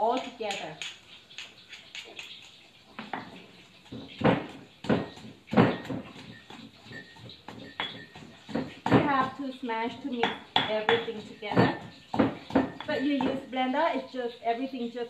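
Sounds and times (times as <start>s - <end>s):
stone pestle pounding in mortar: 3.0s - 9.4s, 10.2s - 13.5s.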